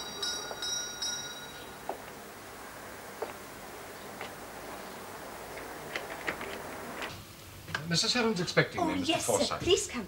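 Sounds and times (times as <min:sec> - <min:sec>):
small doorbell jangling: 0:00.0 - 0:01.8.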